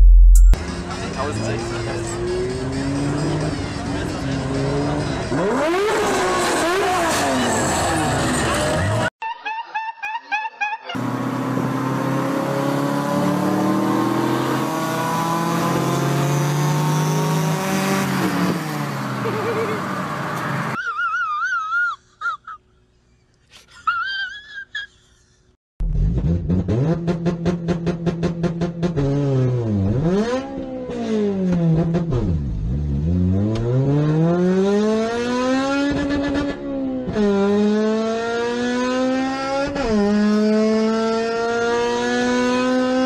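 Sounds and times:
car engine revving: 0.6 - 9.1, 11.0 - 20.8, 25.8 - 43.0.

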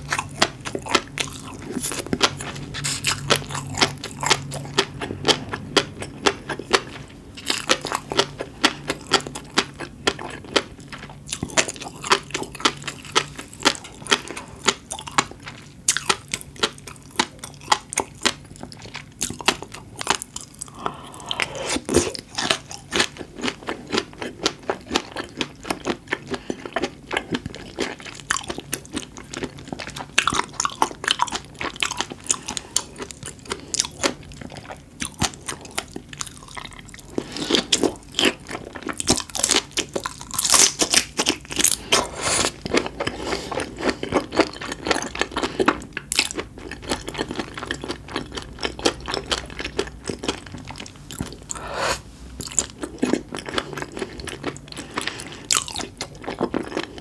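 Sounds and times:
chewing raw seafood: 0.0 - 57.0.

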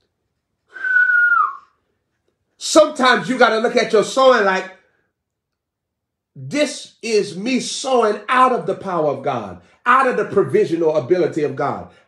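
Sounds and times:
breathy whistled note: 0.7 - 1.9.

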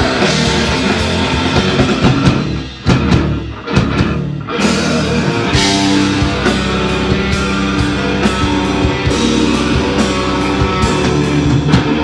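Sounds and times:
heavy rock band playing: 0.0 - 12.0
drum hits: 4.8 - 12.0.

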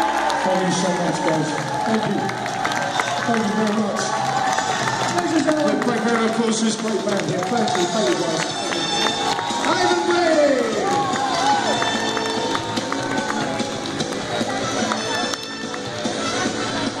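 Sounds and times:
loud audience voices: 0.0 - 17.0
live band playing: 6.8 - 17.0.

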